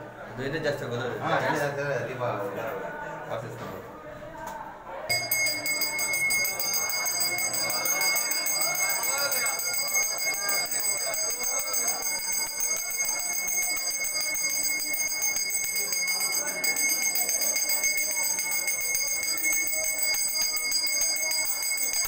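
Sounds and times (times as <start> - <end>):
faint voices: 2.2 - 22.0
bell ringing rapidly: 5.1 - 22.0.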